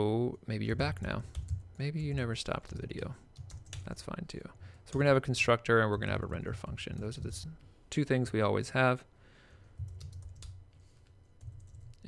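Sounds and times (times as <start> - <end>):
soft keystrokes on keyboard: 9.8 - 10.6.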